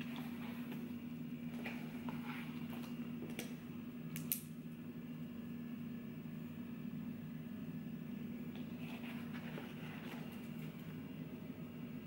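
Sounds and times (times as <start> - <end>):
steady low hum: 0.0 - 12.0
book pages rustling: 8.6 - 10.8.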